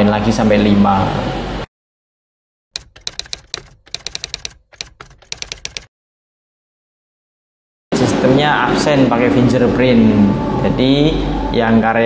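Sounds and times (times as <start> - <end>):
rapid keyboard typing clicks: 2.8 - 5.9.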